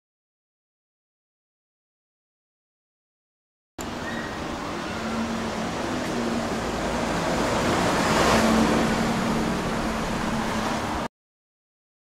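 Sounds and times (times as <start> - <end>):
vehicle passing: 3.8 - 11.1.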